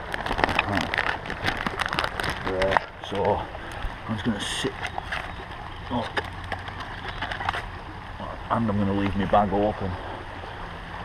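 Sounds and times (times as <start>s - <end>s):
backpack rustling: 0.0s - 7.8s.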